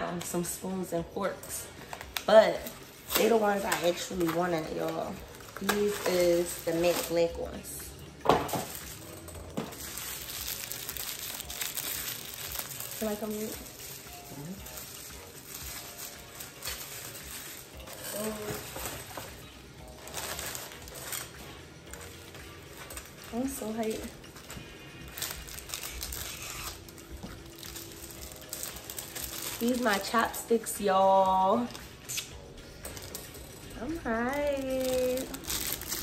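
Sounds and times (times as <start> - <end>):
plastic packaging rustling: 1.3 - 7.7, 8.4 - 36.0.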